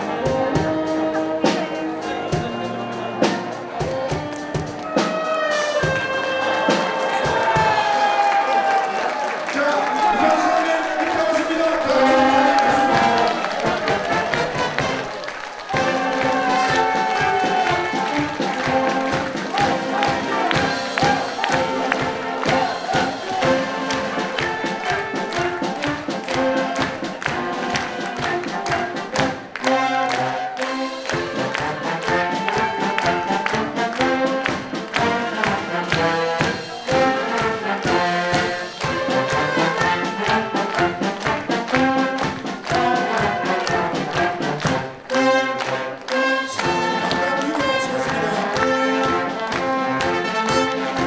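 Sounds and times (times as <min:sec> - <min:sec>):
wind band playing: 0:00.0 - 0:51.0
audience clapping along: 0:03.2 - 0:51.0.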